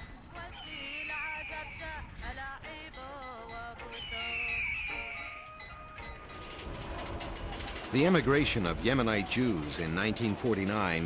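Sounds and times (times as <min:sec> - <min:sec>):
faint music: 0:00.0 - 0:11.0
propeller plane engine clatter: 0:06.0 - 0:11.0.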